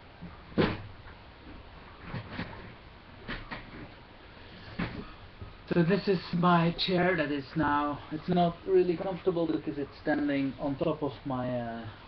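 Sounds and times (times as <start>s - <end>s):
office chair knocks and creaks: 0.2s - 1.0s, 4.7s - 5.6s.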